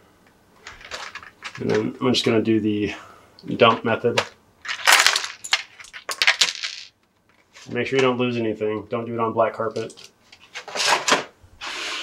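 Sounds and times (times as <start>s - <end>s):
small plastic pieces clattering: 0.6s - 1.9s, 4.2s - 7.4s.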